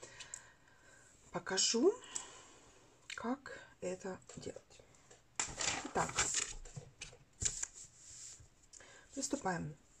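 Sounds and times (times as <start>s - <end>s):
paper rustling: 5.4s - 8.4s.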